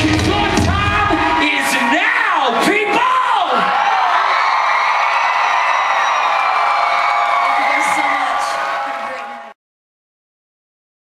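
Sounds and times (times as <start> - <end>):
live band amplified music: 0.0 - 3.2
crowd cheering and whooping: 0.1 - 9.6.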